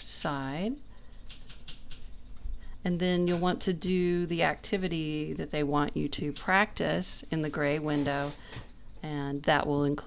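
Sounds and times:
light uneven computer clicks: 0:00.7 - 0:04.0, 0:04.7 - 0:06.9.

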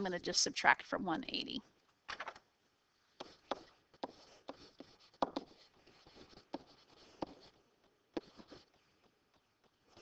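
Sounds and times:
stylus tapping and scratching: 0:03.1 - 0:10.0.

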